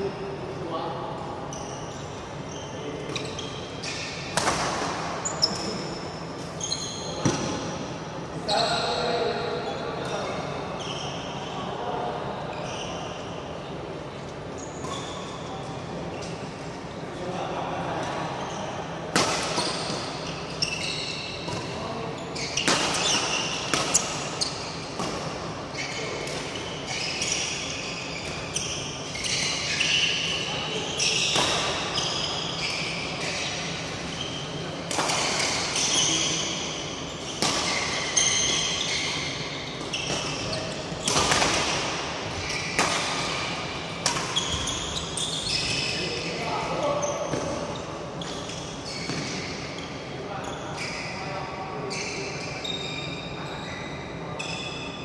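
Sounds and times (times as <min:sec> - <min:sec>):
shoes squeaking on floor: 0:01.5 - 0:04.4, 0:05.1 - 0:07.8, 0:08.4 - 0:11.9, 0:12.5 - 0:13.5, 0:14.4 - 0:16.9, 0:19.4 - 0:55.0.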